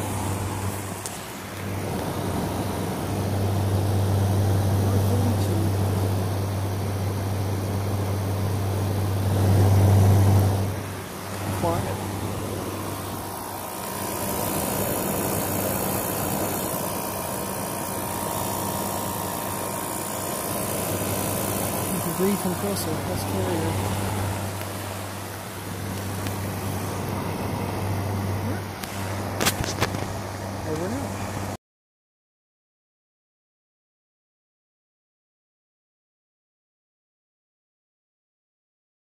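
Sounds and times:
air conditioner compressor hum: 0.0 - 31.6
condenser fan rushing: 0.0 - 31.6.

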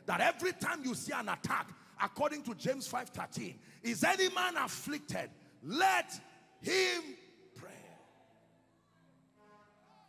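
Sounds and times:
man speaking: 0.0 - 7.9.

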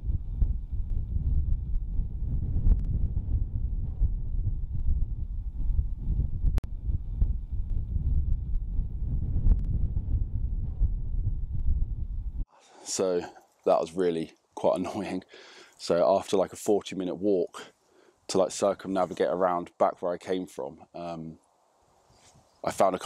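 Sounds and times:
wind buffeting microphone: 0.0 - 12.5.

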